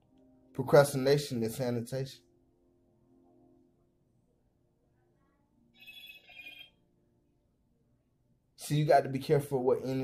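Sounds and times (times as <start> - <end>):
high ringing tone: 5.8 - 6.8.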